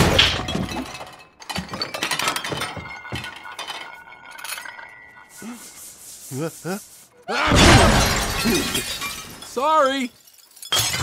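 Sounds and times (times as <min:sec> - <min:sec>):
glass window shattering: 0:00.0 - 0:05.0, 0:07.4 - 0:11.0
china breaking: 0:00.0 - 0:05.8, 0:07.4 - 0:11.0
clattering debris: 0:00.0 - 0:05.9, 0:07.5 - 0:11.0.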